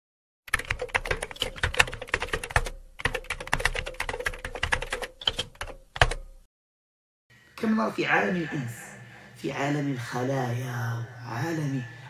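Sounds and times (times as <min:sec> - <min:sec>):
rapid keyboard typing clicks: 0:00.5 - 0:06.3.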